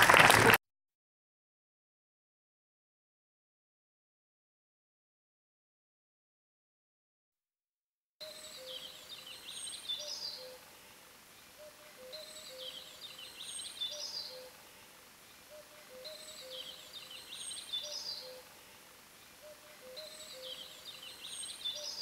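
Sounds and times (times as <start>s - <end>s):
faint birdsong chirping: 8.2s - 22.0s.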